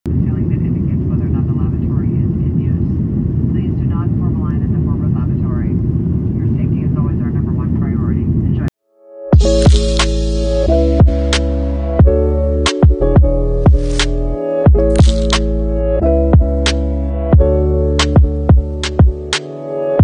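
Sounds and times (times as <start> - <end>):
heavy low rumble: 0.1 - 8.7, 9.4 - 19.3
music with deep bass: 9.3 - 20.0.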